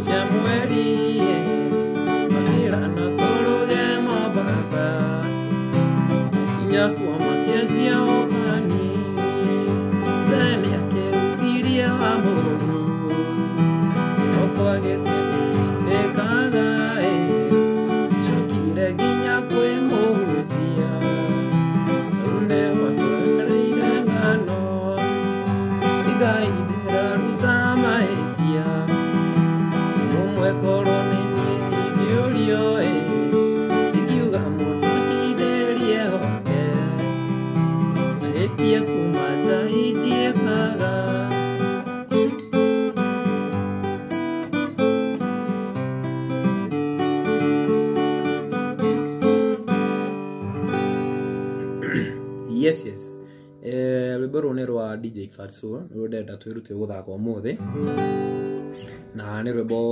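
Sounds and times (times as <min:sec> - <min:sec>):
acoustic guitar strummed and picked: 0:00.0 - 0:55.0, 0:57.1 - 0:59.9.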